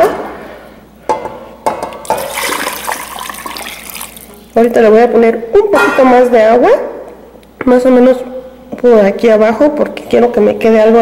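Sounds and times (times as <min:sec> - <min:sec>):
water pouring into a pot: 0:02.0 - 0:04.6.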